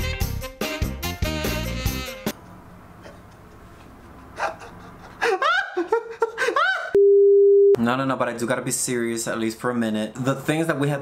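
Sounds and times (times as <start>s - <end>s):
man laughing: 4.2s - 7.0s
censor bleep: 7.0s - 7.8s.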